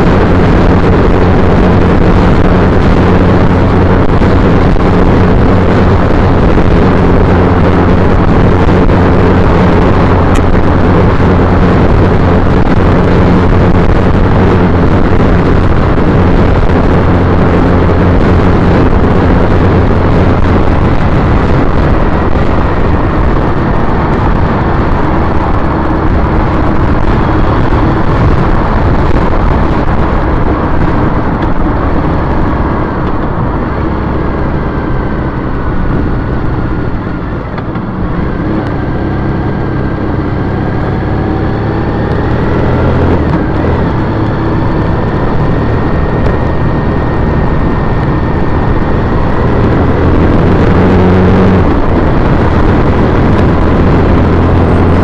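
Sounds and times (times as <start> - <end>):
motorcycle engine running: 0.0 - 55.0
road noise rushing: 0.0 - 55.0.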